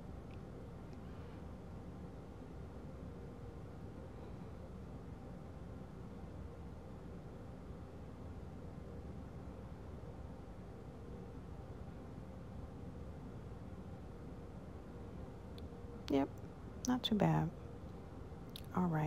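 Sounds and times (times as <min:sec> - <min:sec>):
faint hum: 0:00.0 - 0:19.0
low background hiss: 0:00.0 - 0:19.0.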